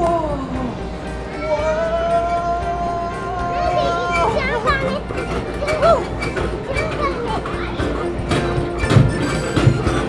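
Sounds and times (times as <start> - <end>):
background music: 0.0 - 10.0
children playing and calling out: 0.4 - 10.0.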